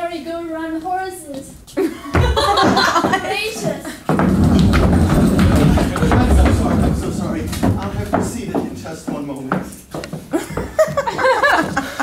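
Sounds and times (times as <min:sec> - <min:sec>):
running footsteps on hollow stage: 0:01.6 - 0:12.0
wheeled cart rolling on boards: 0:02.2 - 0:11.9.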